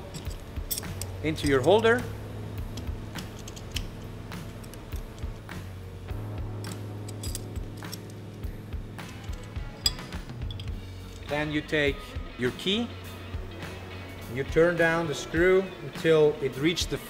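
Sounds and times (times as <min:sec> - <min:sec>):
metal tools clicking and clinking: 0:00.0 - 0:02.0, 0:02.7 - 0:05.4, 0:06.6 - 0:11.4
background music with bass line: 0:00.0 - 0:17.0.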